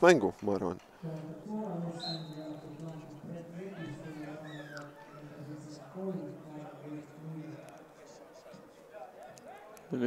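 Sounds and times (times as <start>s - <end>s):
distant voices calling out: 1.0s - 8.7s.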